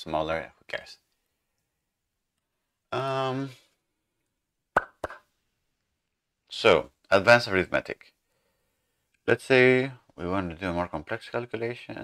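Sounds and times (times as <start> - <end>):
mouth pops: 4.7 - 5.3.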